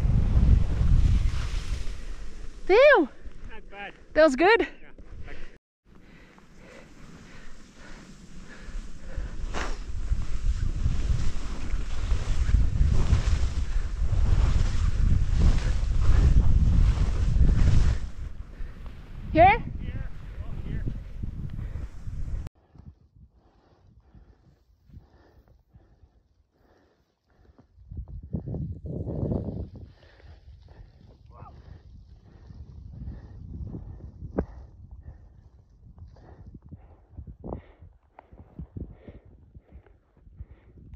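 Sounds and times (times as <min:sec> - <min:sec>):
wind buffeting microphone: 0:00.0 - 0:03.6, 0:05.1 - 0:26.2, 0:27.7 - 0:40.9
skis hissing through snow: 0:00.3 - 0:03.6, 0:06.3 - 0:19.2.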